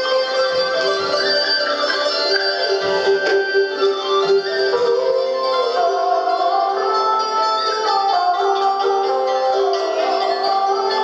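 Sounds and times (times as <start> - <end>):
bowed fiddle long note: 0.0 - 10.5
plucked zithers: 0.0 - 11.0.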